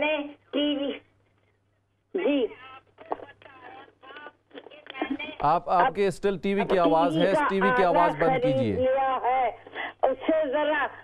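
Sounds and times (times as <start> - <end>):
person speaking over telephone: 5.7 - 8.9.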